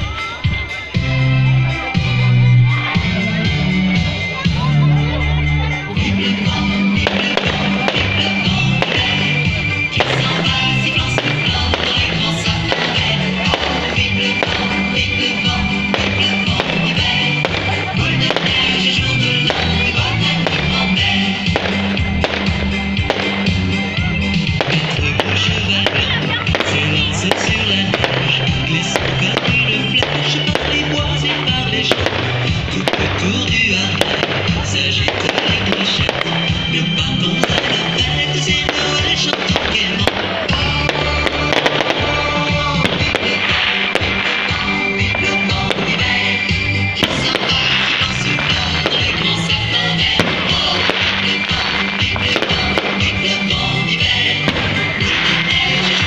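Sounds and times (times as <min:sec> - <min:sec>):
fireworks bursting and crackling: 0:00.0 - 0:56.0
loud music with bass: 0:00.0 - 0:56.0.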